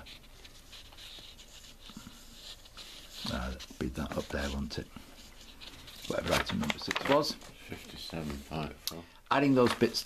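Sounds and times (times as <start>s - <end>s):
fingertip brushing paper: 0.0s - 6.8s.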